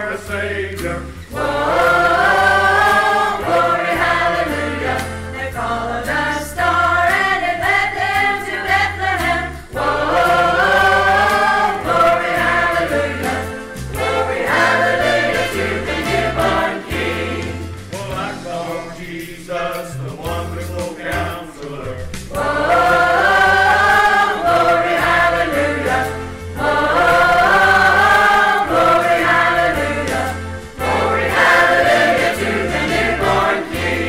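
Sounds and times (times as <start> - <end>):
stepping bass accompaniment: 0.0 - 18.9, 19.5 - 34.0
choir singing gospel song: 0.0 - 34.0.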